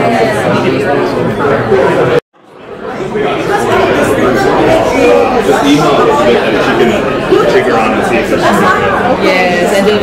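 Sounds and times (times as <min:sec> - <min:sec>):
chatter of many people: 0:00.0 - 0:10.0.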